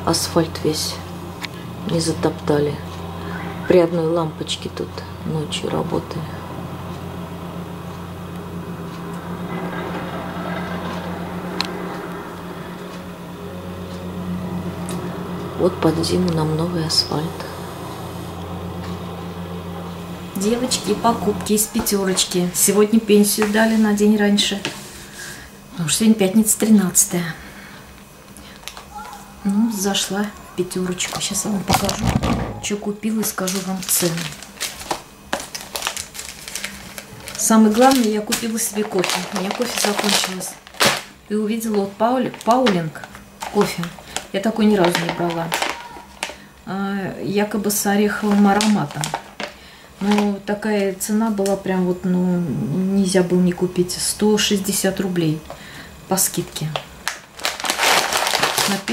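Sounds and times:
plate compactor humming: 0.0 - 23.5, 29.9 - 41.3
paper receipt rustling: 33.2 - 46.4, 48.1 - 50.4, 57.4 - 58.9.

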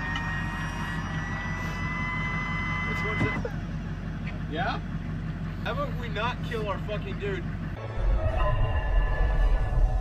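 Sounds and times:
vehicle engine low drone: 0.0 - 10.0.

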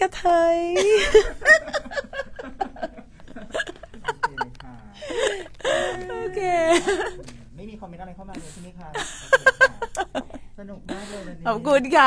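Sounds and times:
women laughing: 0.8 - 7.3, 9.0 - 10.4.

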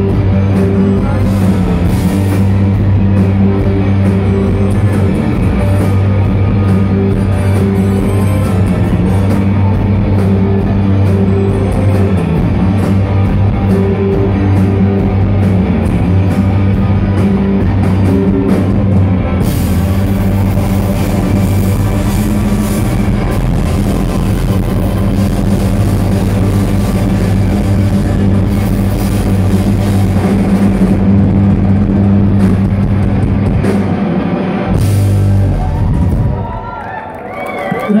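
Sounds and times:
person singing: 0.0 - 9.3
live rock band playing: 0.0 - 38.0.

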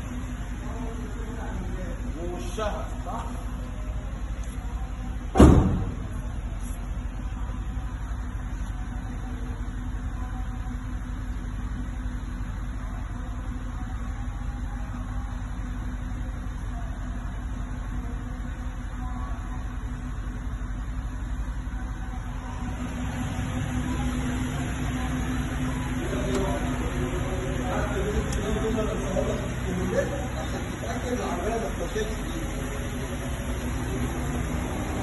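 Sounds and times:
diesel engine idling: 0.0 - 35.0.

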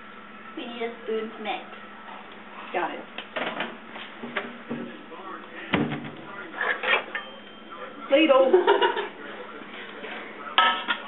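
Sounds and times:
utensils clattering against a pot: 6.5 - 7.4, 10.6 - 11.0.

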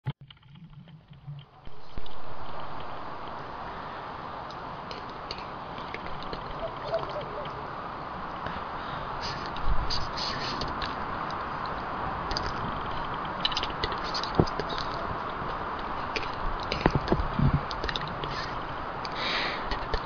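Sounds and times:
trees creaking and scraping: 0.2 - 20.0.

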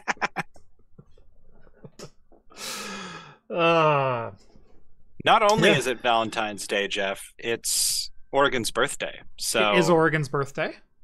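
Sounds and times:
breathy exhale: 2.5 - 3.5
person breathing out: 2.5 - 4.4.

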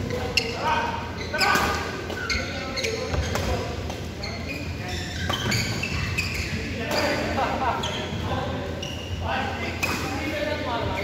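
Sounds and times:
shoes squeaking on court: 0.0 - 10.0
players' voices: 0.0 - 11.0.

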